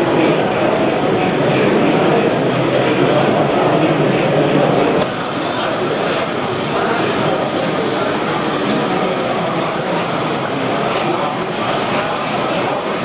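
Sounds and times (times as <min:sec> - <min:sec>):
crowd babble: 0:00.0 - 0:13.0.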